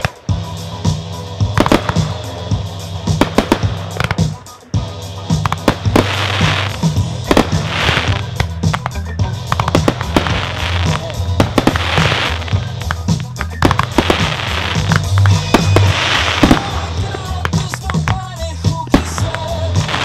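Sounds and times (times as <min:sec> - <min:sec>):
fireworks popping and banging: 0:00.0 - 0:00.4, 0:01.4 - 0:04.6, 0:05.3 - 0:20.0
loud music with low beat: 0:00.0 - 0:20.0
surges of hiss: 0:00.0 - 0:20.0.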